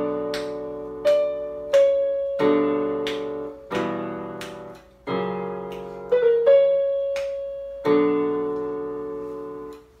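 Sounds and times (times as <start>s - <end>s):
electronic keyboard piano chord: 0.0s - 10.0s.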